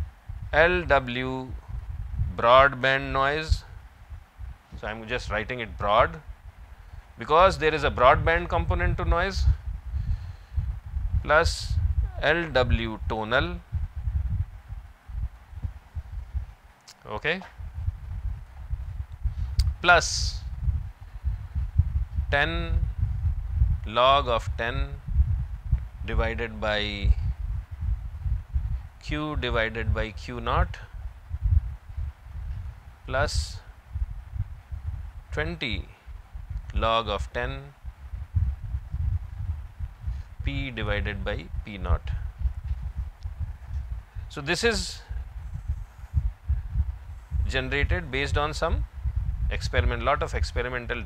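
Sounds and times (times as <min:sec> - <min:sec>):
low thudding rumble on microphone: 0:00.0 - 0:51.0.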